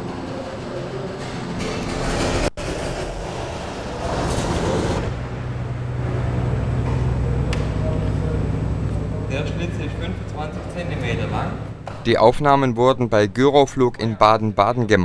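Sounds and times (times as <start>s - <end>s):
low hum: 0.0s - 13.1s
rumbling background noise: 0.0s - 14.0s.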